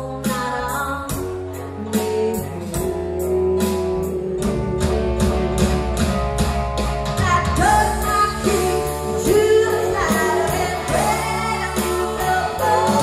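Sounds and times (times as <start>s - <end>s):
woman singing lead vocal: 0.0s - 3.4s, 7.2s - 13.0s
live country-rock band: 0.0s - 13.0s.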